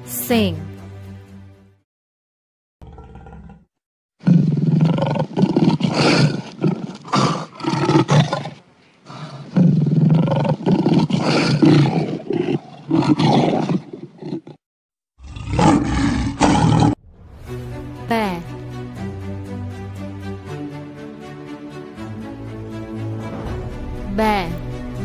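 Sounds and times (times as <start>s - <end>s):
lion roaring: 2.8s - 14.6s, 15.2s - 17.0s.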